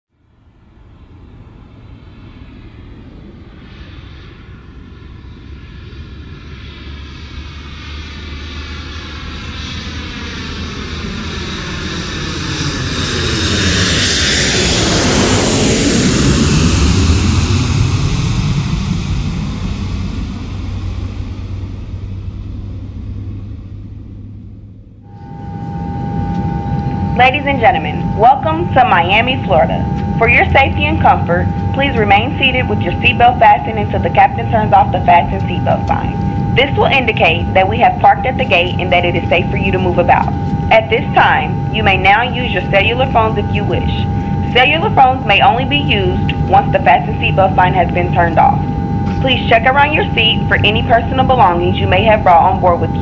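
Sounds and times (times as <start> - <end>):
jet airliner flying past: 0.2 - 53.0
steady tone: 13.1 - 53.0.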